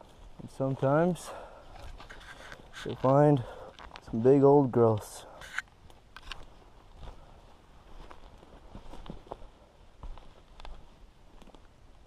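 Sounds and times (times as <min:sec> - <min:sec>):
footsteps on forest floor: 0:00.0 - 0:11.7.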